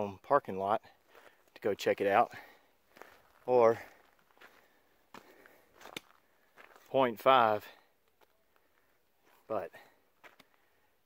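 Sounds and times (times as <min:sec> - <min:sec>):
faint footsteps on gravel: 0:00.8 - 0:10.8.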